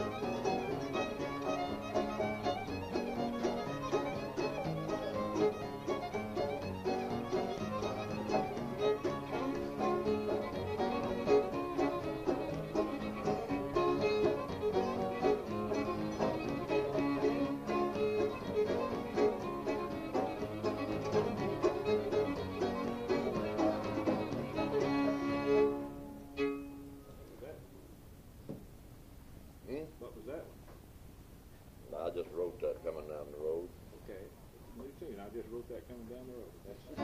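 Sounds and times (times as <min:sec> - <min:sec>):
fiddle tune with string band: 0:00.0 - 0:27.6, 0:34.8 - 0:37.0
knock: 0:28.4 - 0:28.7.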